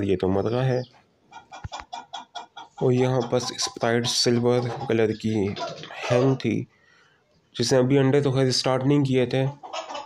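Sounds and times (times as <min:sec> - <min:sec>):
chicken clucking: 0:00.6 - 0:06.7, 0:09.1 - 0:10.0.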